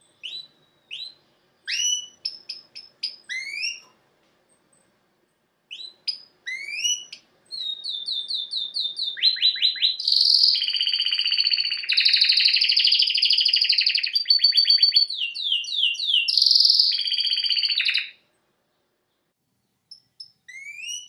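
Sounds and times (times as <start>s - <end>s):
canary singing with trills: 0.0s - 4.0s, 5.7s - 18.2s, 19.9s - 21.0s.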